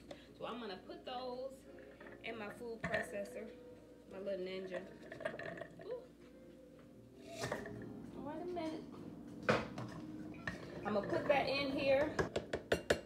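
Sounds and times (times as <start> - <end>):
kitchenware handled on countertop: 2.8 - 3.3, 9.5 - 13.0.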